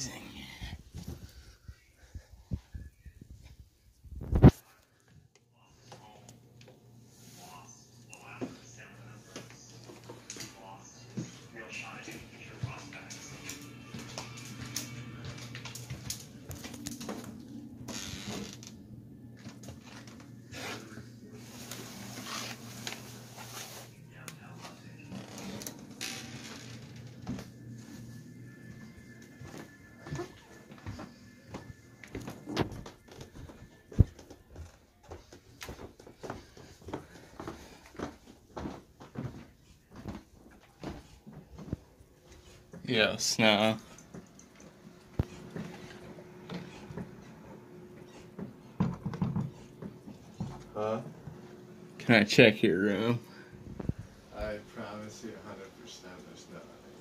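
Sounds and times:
faint background music: 0:00.0 - 0:57.0.

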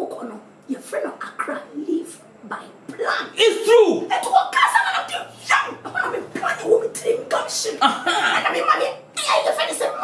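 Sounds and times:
woman speaking agitatedly: 0:00.0 - 0:10.0.

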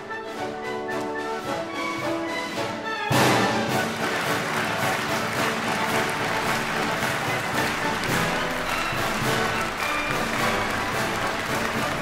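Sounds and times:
orchestral music: 0:00.0 - 0:12.0
audience applause: 0:03.2 - 0:12.0.

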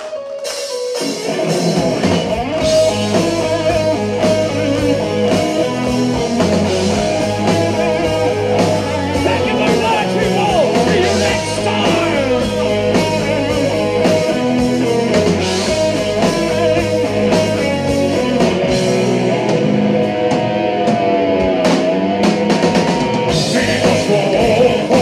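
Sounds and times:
heavy metal band playing: 0:00.0 - 0:25.0.

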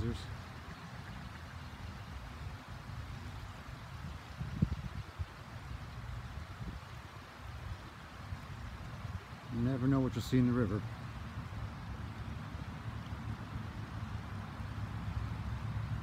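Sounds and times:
river water rushing over rocks: 0:00.0 - 0:16.0
wind rumble on microphone: 0:00.0 - 0:16.0.

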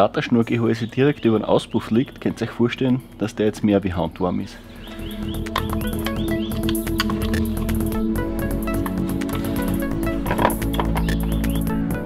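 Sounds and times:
held chords: 0:04.6 - 0:12.0
regular clicking beat: 0:04.9 - 0:12.0.

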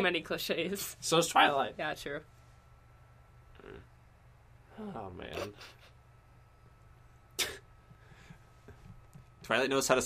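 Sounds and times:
faint room noise: 0:00.0 - 0:10.0
person coughing: 0:07.4 - 0:07.7.

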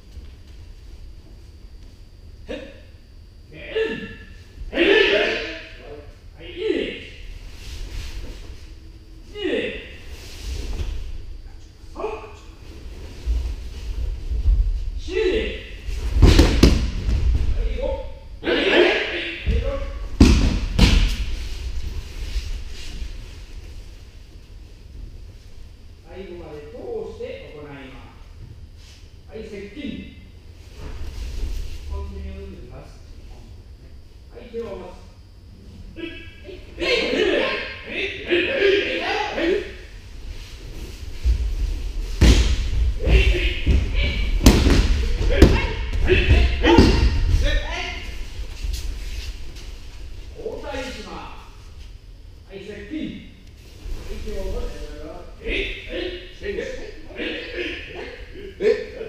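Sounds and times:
person calling out: 0:03.5 - 0:07.1, 0:09.3 - 0:10.0, 0:36.0 - 0:39.8, 0:43.0 - 0:44.4, 0:45.0 - 0:48.2
bodies thudding on mats: 0:16.0 - 0:17.6, 0:41.2 - 0:47.5.

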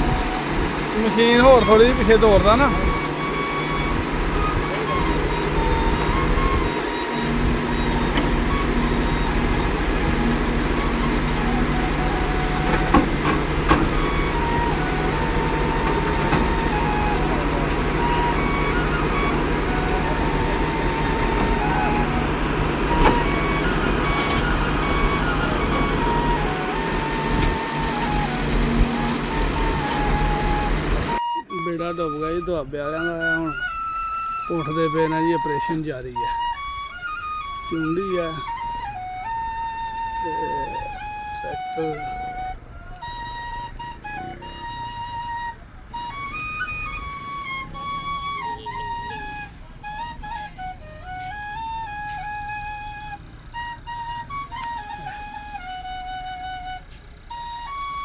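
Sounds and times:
onlookers' voices: 0:00.0 - 0:31.2
excavator diesel engine running: 0:00.0 - 0:58.0.

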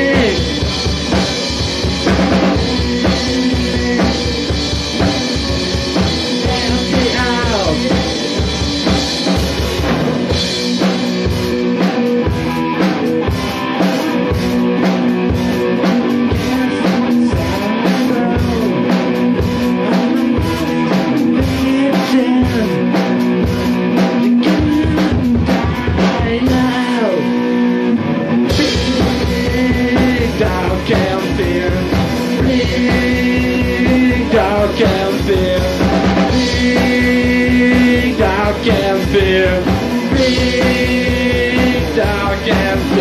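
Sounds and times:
drum kit: 0:00.0 - 0:43.0
electric guitar: 0:00.0 - 0:43.0
rock band playing: 0:00.0 - 0:43.0.

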